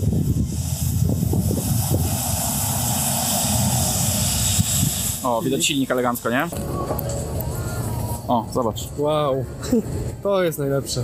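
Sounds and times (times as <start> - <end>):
bus engine rumble: 0.0 - 11.0
tyre and road hiss: 0.0 - 11.0.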